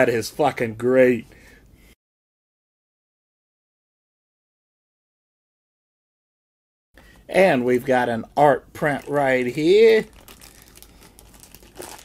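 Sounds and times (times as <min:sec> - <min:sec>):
paper crinkling and crackling: 0:08.8 - 0:12.0.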